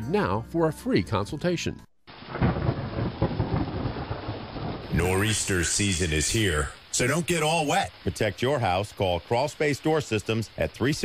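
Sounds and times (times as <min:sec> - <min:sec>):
rolling thunder: 0:02.1 - 0:06.9
steady rain: 0:02.1 - 0:11.0.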